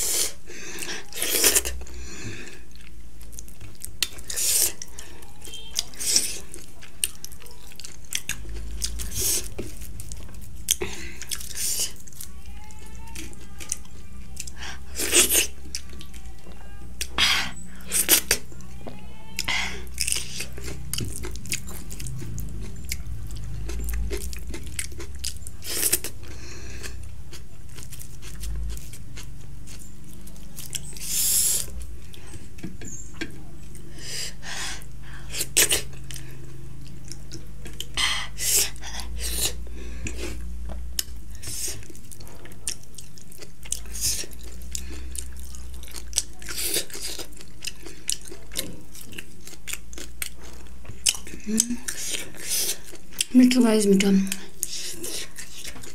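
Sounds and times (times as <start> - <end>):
person chewing food: 0.0 - 55.9
steady low hum: 0.0 - 55.9.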